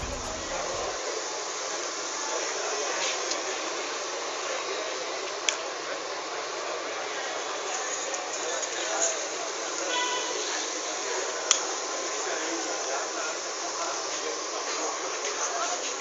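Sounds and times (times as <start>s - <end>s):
outdoor crowd noise: 0.0s - 16.0s.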